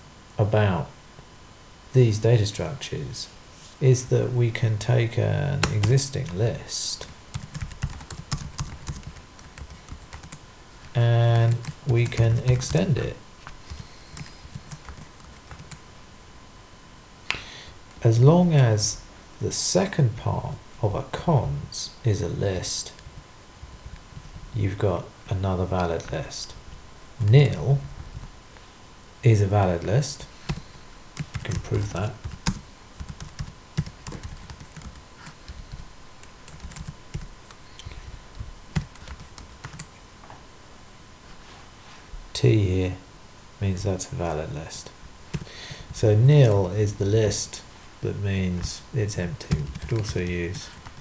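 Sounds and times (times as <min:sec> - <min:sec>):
computer keyboard typing clicks: 0:07.3 - 0:10.4, 0:36.5 - 0:37.3.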